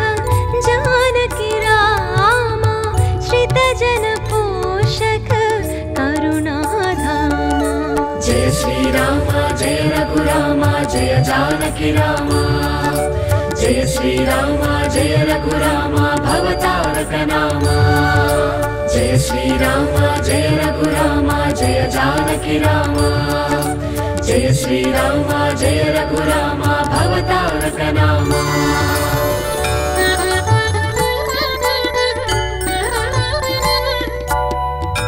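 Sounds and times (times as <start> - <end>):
devotional music with steady beat: 0.0 - 35.0
melody line: 28.2 - 34.0.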